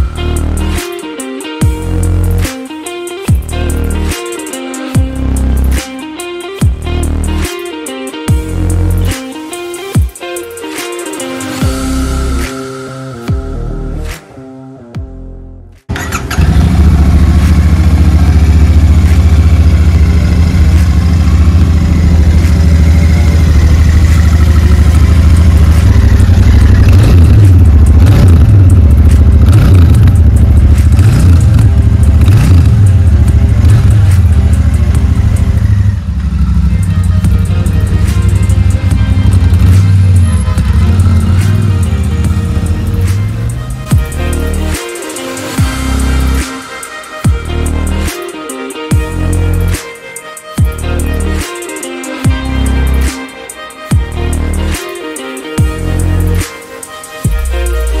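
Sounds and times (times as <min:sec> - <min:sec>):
motorcycle engine revving: 0:15.9 - 0:44.8.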